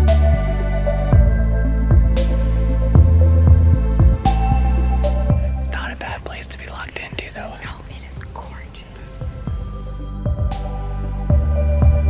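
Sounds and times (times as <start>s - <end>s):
faint background music: 0.0s - 12.0s
man whispering: 5.7s - 9.4s.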